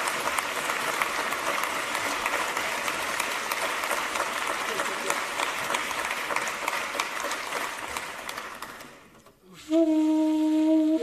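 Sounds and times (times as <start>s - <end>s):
audience applause: 0.0s - 9.2s.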